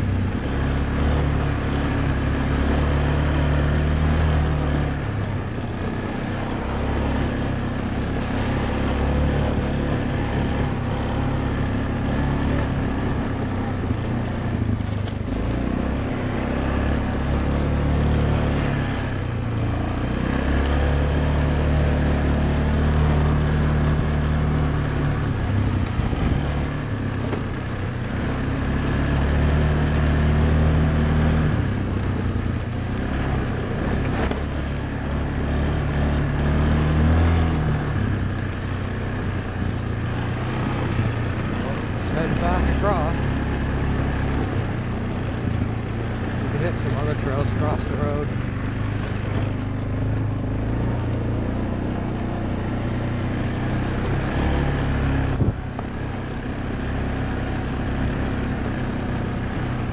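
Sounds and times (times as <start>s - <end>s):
quad bike engine running hard: 0.0s - 59.9s.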